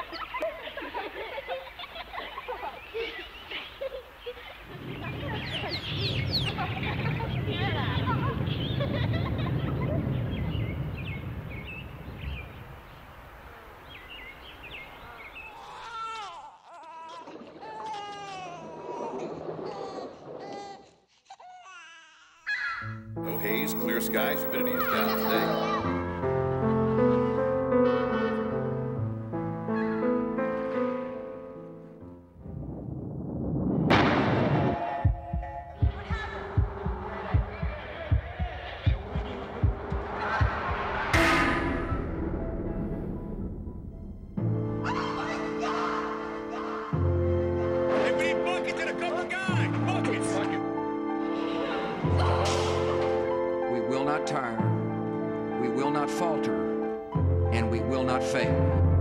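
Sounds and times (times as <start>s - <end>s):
small birds chirping: 10.0s - 15.8s, 23.3s - 25.6s
child crying: 15.6s - 19.2s, 19.8s - 22.9s
sustained musical tones: 23.3s - 25.7s
loud boom: 32.5s - 34.8s, 41.2s - 45.0s
heartbeat-like low thumps: 35.0s - 44.8s
whoosh: 41.0s - 45.0s
low rumble: 41.1s - 45.1s.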